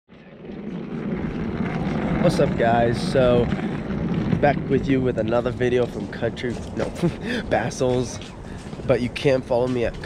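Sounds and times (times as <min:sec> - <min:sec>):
low rumble and hiss: 0:00.1 - 0:10.0.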